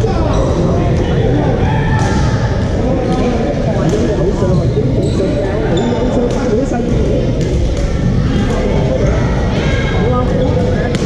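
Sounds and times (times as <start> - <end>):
many overlapping voices: 0.0 - 11.0
shoes squeaking on court floor: 4.5 - 6.6.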